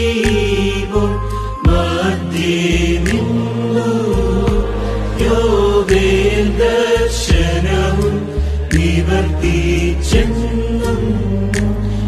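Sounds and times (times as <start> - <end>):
held melody line: 0.0 - 8.2
sustained bass notes: 0.0 - 12.0.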